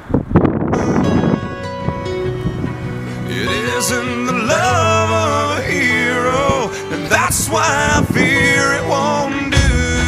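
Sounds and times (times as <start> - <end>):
wind on microphone: 0.0 - 10.0
background music: 0.7 - 10.0.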